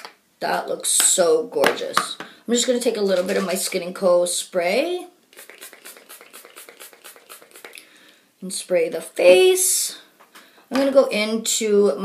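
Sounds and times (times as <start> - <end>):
spray bottle spritzes: 5.3 - 7.8.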